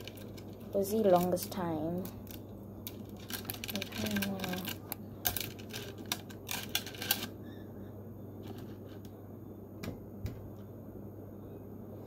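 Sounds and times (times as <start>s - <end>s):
small objects clicking and rattling: 0.0s - 7.4s.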